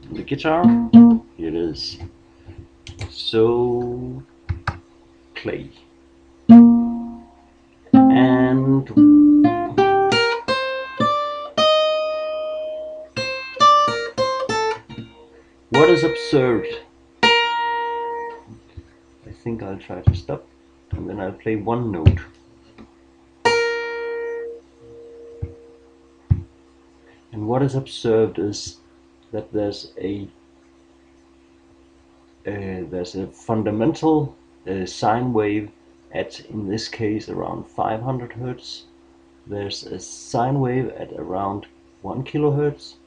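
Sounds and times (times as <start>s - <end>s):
guitar note plucked: 0.6s - 1.3s, 6.5s - 18.6s, 23.4s - 26.5s
guitar strum: 0.6s - 1.3s, 6.5s - 18.5s, 23.4s - 26.5s.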